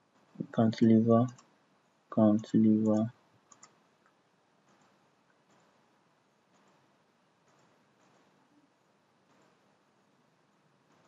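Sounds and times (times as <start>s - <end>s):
person speaking: 0.4s - 1.4s, 2.1s - 3.1s
computer mouse clicking: 1.2s - 1.5s, 2.8s - 5.8s, 7.4s - 8.4s.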